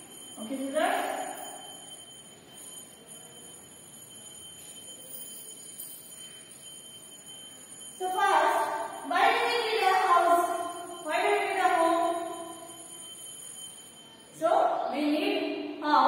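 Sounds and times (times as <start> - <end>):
woman speaking: 0.4 - 1.2, 8.0 - 12.2, 14.4 - 16.0.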